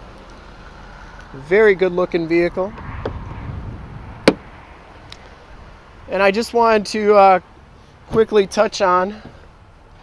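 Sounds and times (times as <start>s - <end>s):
low background rumble: 0.0s - 6.2s.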